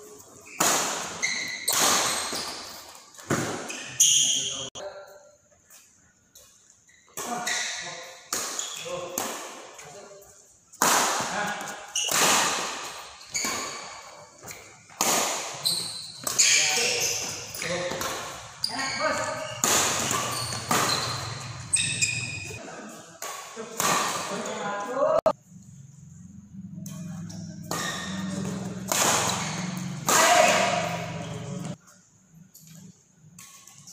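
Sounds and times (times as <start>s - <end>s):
rackets striking shuttlecock: 0.4s - 3.8s, 10.8s - 22.6s, 26.8s - 31.8s.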